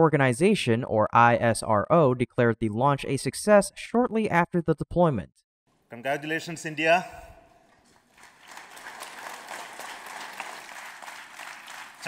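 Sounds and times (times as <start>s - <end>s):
audience applauding: 7.7s - 12.0s.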